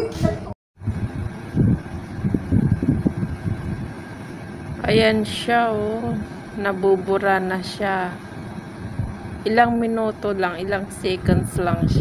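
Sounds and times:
low irregular rumbling: 0.0 - 12.0.

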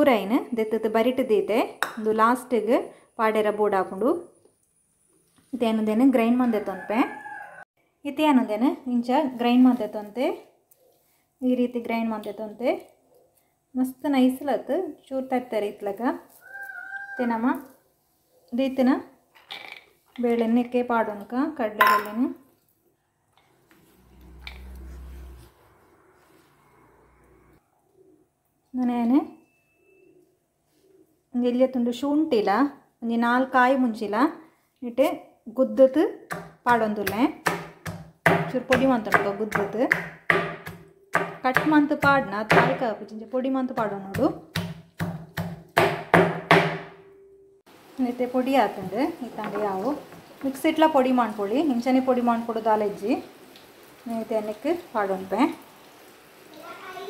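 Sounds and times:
steel bowl clinking on plate: 21.8 - 22.2
stone pestle pounding in mortar: 36.3 - 42.8, 43.8 - 47.0.

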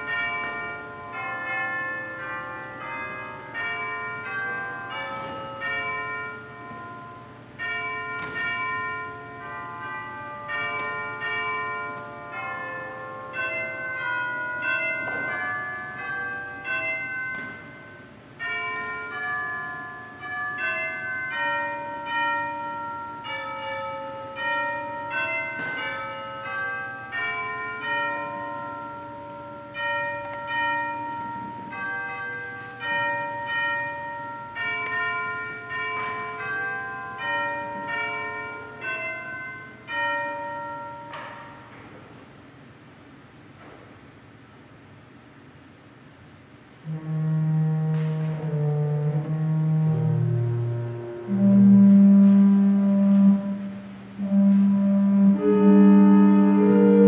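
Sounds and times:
church bells ringing: 0.0 - 44.1, 46.8 - 57.0.

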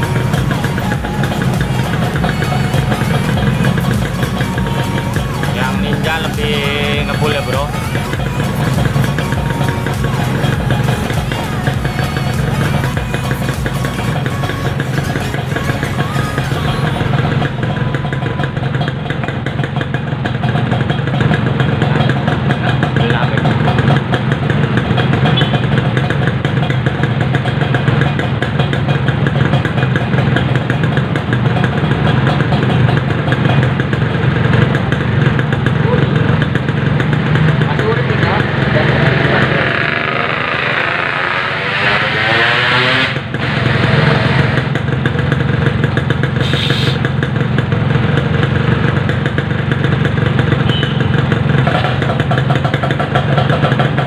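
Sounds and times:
motorcycle engines idling: 0.0 - 54.0.

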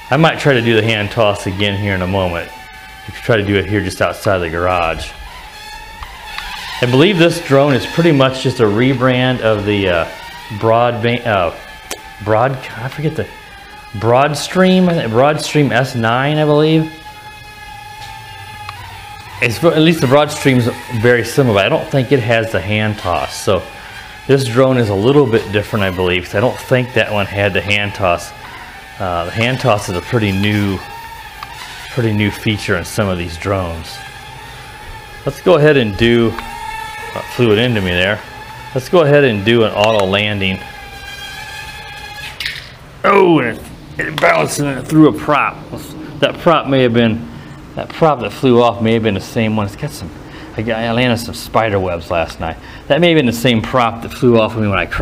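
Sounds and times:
drone motors whining: 0.0 - 55.0.

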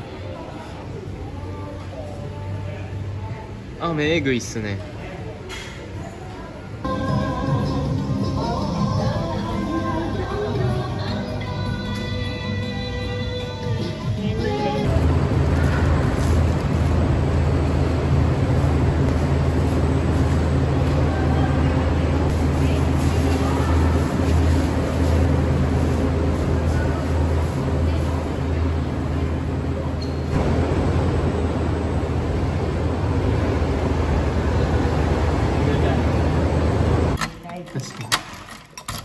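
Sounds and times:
motorbike engines humming: 6.9 - 37.2.

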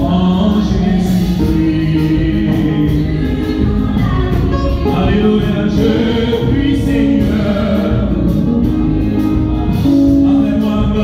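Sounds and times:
group singing gospel song: 0.0 - 11.0.

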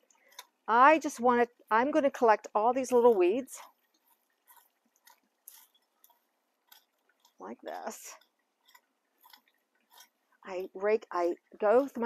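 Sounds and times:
hoe scraping loose soil: 2.8 - 10.2.

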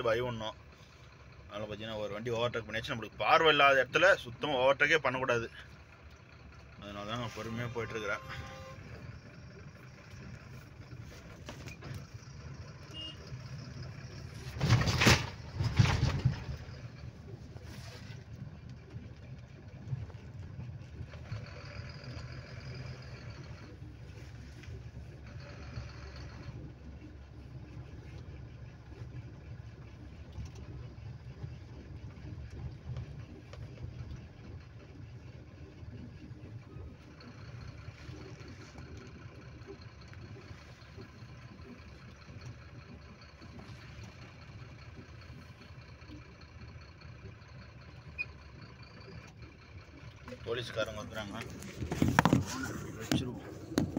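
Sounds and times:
road noise: 0.0 - 53.9
vehicle engine running: 0.0 - 53.9.

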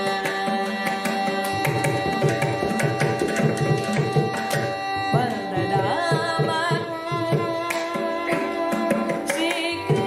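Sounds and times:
hand drum strokes: 0.0 - 10.0
violin: 0.0 - 10.0
woman singing: 0.0 - 10.0.

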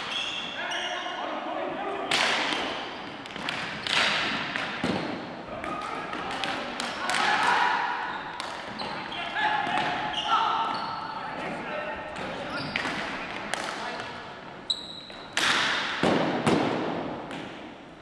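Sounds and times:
hockey sticks clacking: 2.1 - 10.1, 11.4 - 17.8
players shouting: 6.9 - 8.2.

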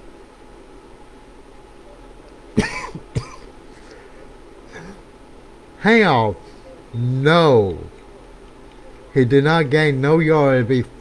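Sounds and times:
man coughing: 2.6 - 3.5, 4.7 - 5.0.

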